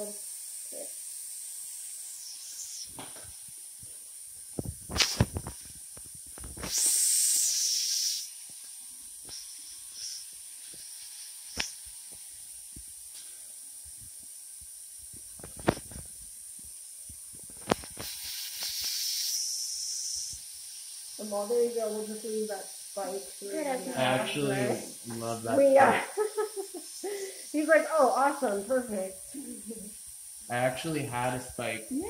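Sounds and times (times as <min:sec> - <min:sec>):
loud hissing bursts: 0:00.0 - 0:32.0
steady hiss: 0:00.0 - 0:32.0.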